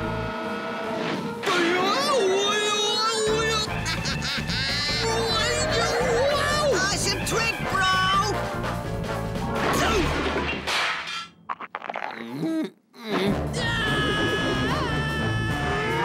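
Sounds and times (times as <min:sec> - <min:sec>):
lively cartoon music: 0:01.0 - 0:10.5, 0:13.2 - 0:16.0
character laughing: 0:03.1 - 0:06.7.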